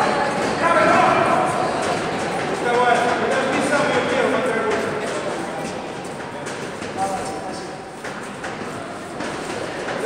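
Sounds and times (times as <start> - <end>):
reverberant hall noise: 0.0 - 10.0.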